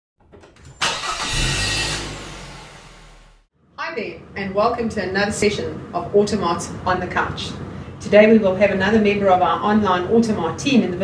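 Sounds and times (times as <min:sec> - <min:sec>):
car engine: 0:00.4 - 0:03.5.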